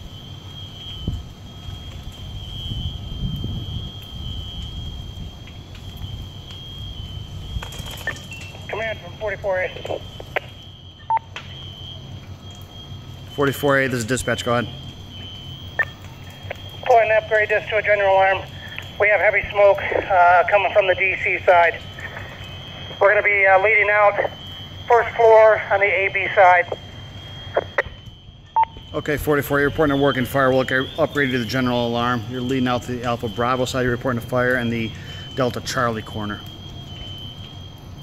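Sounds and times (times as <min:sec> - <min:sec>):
steady low hum: 0:00.0 - 0:38.0
two-way radio beep: 0:08.0 - 0:11.7, 0:12.9 - 0:37.5.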